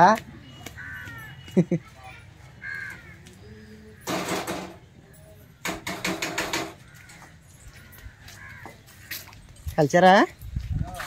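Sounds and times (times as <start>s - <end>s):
crow cawing: 0.8s - 1.5s, 2.6s - 4.7s, 5.6s - 9.2s.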